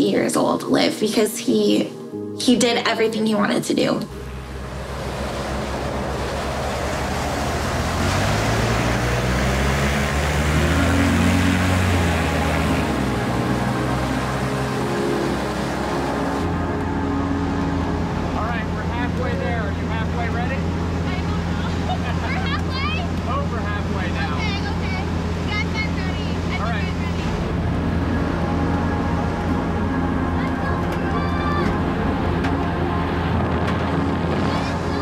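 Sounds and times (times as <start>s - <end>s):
engine drone inside cabin: 4.1s - 35.0s
propeller plane engine drone: 4.1s - 35.0s.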